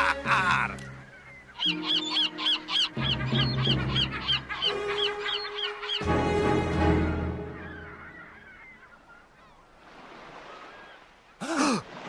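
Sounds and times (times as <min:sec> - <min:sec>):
gull calls: 0:00.0 - 0:06.2, 0:07.0 - 0:09.6
music with long held notes: 0:00.1 - 0:08.0.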